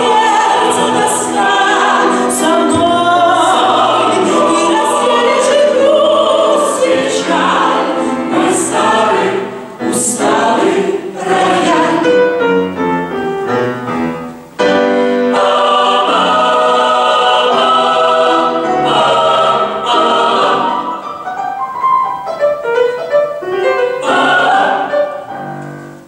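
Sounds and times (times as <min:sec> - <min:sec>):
mixed choir singing: 0:00.0 - 0:12.5, 0:14.7 - 0:21.6, 0:23.7 - 0:25.6
piano accompaniment: 0:00.0 - 0:26.0.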